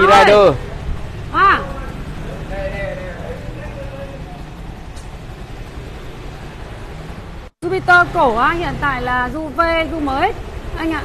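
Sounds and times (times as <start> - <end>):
traffic engine hum and hiss: 0.0 - 11.0.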